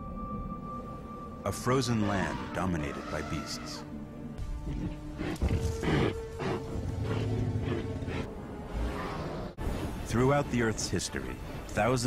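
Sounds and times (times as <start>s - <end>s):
large animal calling: 1.8s - 3.9s.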